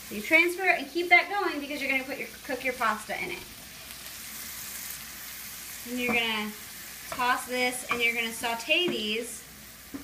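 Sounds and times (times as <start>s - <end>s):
vegetables sizzling in butter: 0.0s - 10.0s.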